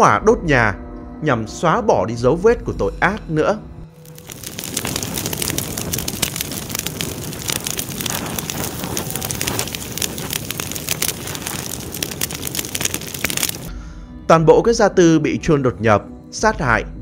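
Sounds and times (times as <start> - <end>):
large fire burning: 4.0 - 13.7.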